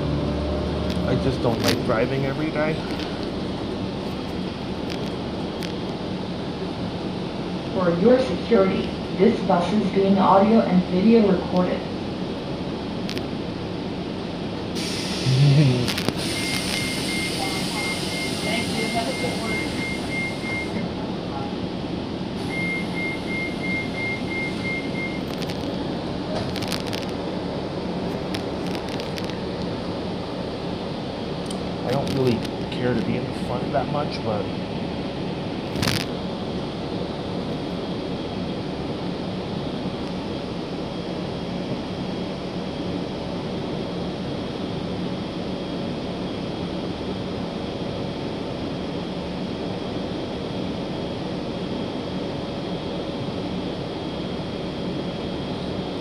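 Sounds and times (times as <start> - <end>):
bus engine and road noise: 0.0 - 56.0.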